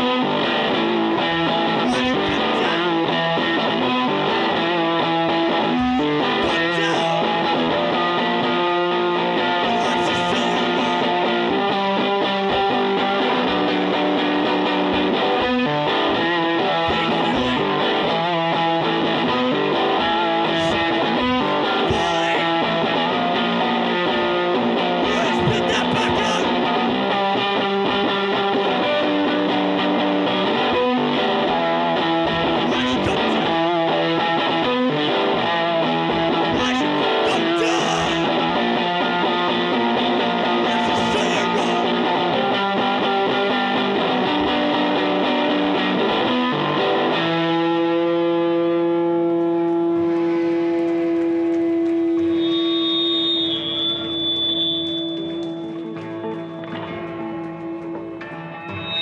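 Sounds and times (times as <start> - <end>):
band with distorted electric guitar: 0.0 - 59.0
high ringing tone: 58.4 - 59.0.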